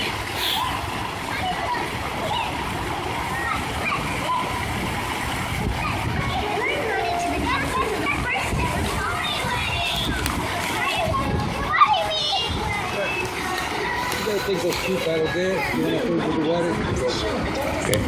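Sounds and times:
children chattering: 0.0 - 18.0
fountain jets splashing: 0.0 - 18.0
voices: 0.0 - 18.0.

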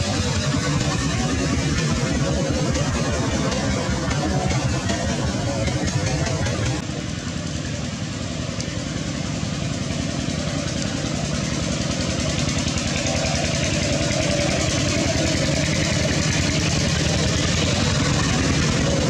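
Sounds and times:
engine running with low pulsing: 0.0 - 19.0.

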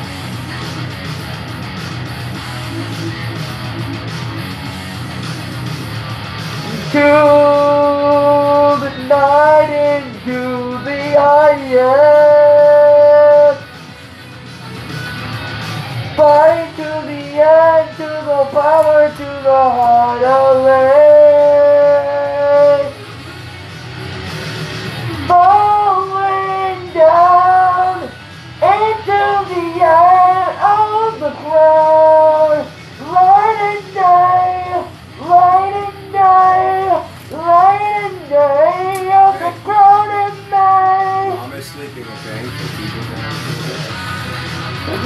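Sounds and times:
backing music: 0.0 - 45.0
person singing long note: 16.2 - 23.0, 25.2 - 41.4.

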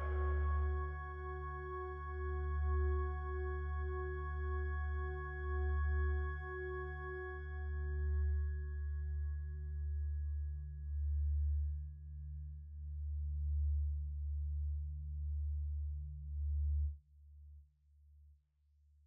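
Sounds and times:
low pulsing drone: 0.0 - 14.5.

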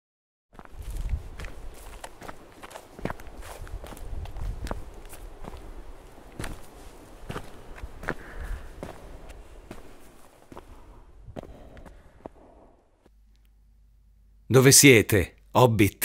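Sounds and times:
footsteps on asphalt: 0.6 - 13.2.

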